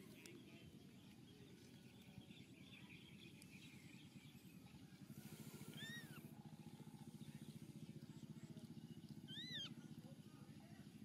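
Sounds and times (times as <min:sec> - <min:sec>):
faint low pulsing hum: 0:00.0 - 0:11.0
animal high call: 0:05.7 - 0:06.3, 0:09.3 - 0:09.8.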